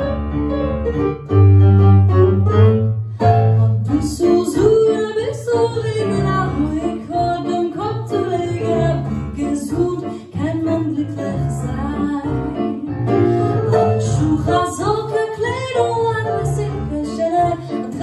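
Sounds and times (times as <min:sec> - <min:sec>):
piano with heavy bass notes: 0:00.0 - 0:18.0
woman singing with vibrato: 0:03.4 - 0:18.0.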